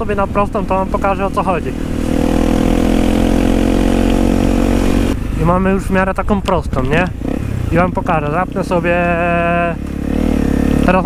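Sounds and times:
motorcycle engine revving: 0:00.0 - 0:11.0
man's voice holding long sound: 0:07.7 - 0:09.8.

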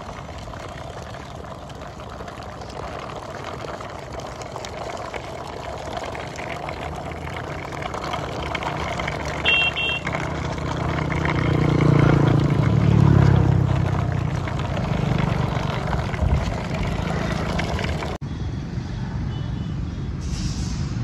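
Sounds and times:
vehicle engine approaching: 0:00.0 - 0:19.1
road noise: 0:00.0 - 0:21.0.

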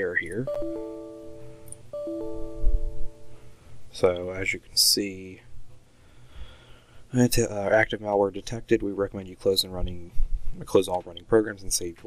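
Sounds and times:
computer error chime: 0:00.4 - 0:03.5.

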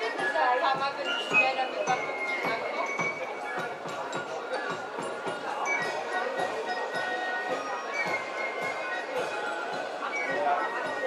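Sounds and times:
marching flutes: 0:05.8 - 0:11.0.

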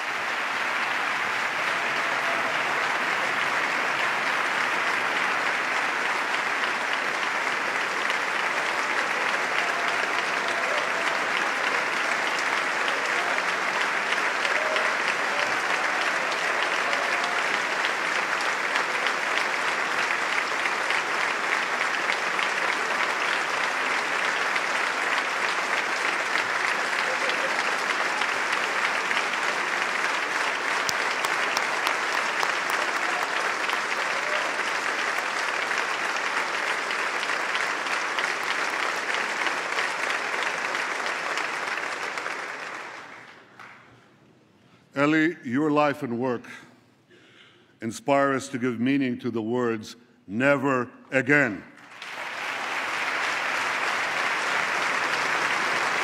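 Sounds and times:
crowd clapping: 0:00.0 - 0:44.2, 0:51.3 - 0:56.0.

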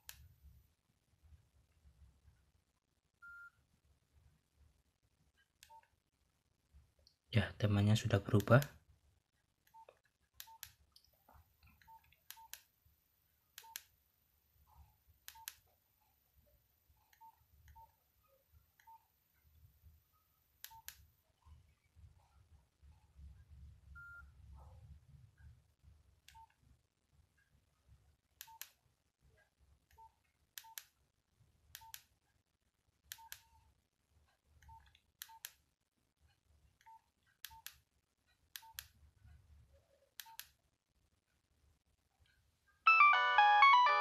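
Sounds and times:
polyphonic ringtone: 0:42.9 - 0:44.0.

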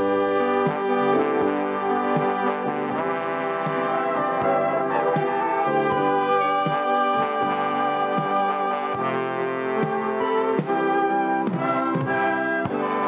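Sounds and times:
trumpets playing in harmony: 0:00.0 - 0:13.0.

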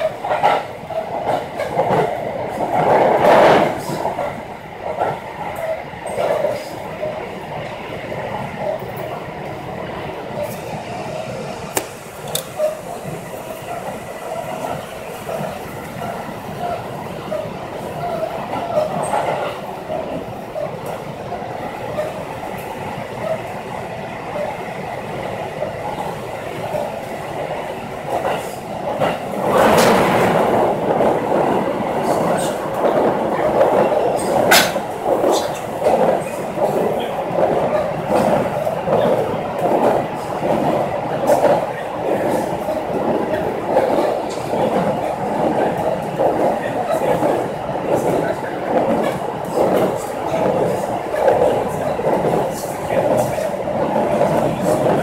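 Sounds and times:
pulsing train clatter: 0:00.0 - 0:55.0
train wheels rumbling on rails: 0:00.0 - 0:55.0.

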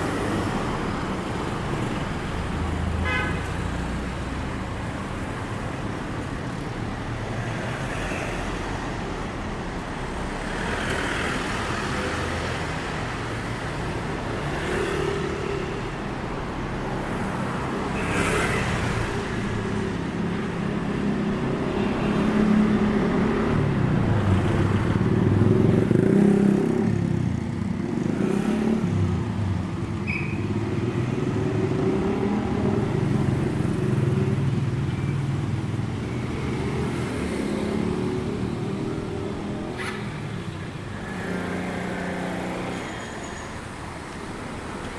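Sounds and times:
cars and motorcycles passing: 0:00.0 - 0:44.9.

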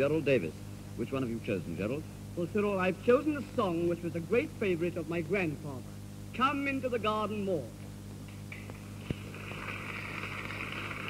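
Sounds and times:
low mains hum and hiss: 0:00.0 - 0:11.0.

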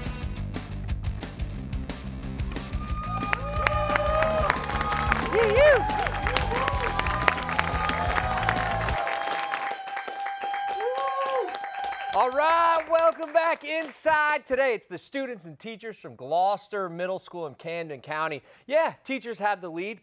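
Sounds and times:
game-show music with steady beat: 0:00.0 - 0:09.0.

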